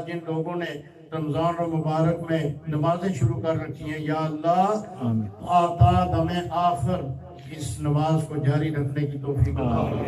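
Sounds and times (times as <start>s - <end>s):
man chanting a prayer: 0.0s - 10.0s.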